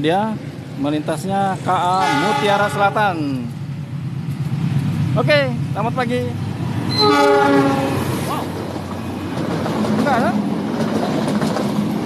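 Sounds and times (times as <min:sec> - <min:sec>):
train coaches rolling over rails: 0:01.4 - 0:12.0
locomotive horn: 0:01.9 - 0:03.0, 0:06.9 - 0:08.1.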